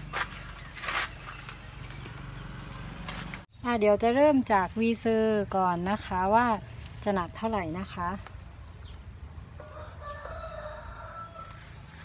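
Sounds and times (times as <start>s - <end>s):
rooster crowing: 9.6s - 12.0s.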